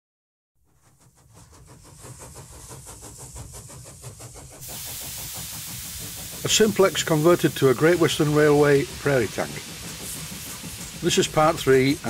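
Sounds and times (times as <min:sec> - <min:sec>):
steam locomotive chuffing: 0:00.6 - 0:12.0
steam hissing: 0:00.7 - 0:12.0.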